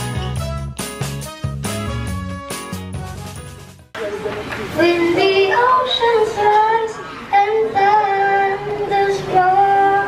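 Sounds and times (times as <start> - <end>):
boy singing into a microphone: 4.8 - 10.0.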